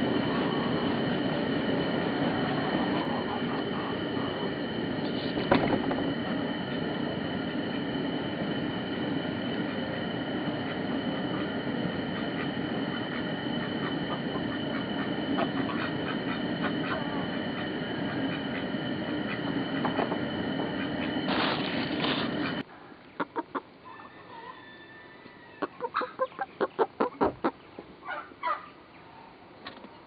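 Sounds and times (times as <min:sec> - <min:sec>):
steady rumbling noise: 0:00.0 - 0:22.7.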